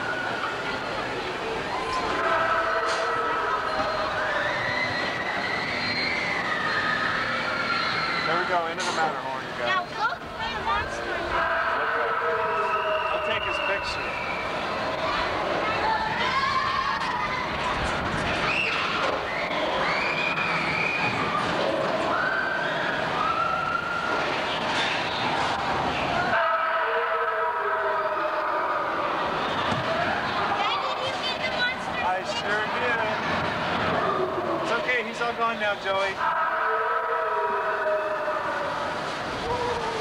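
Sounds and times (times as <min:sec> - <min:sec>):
indistinct voices: 0:00.0 - 0:40.0
steady background noise: 0:00.0 - 0:40.0
high yells: 0:01.7 - 0:08.7.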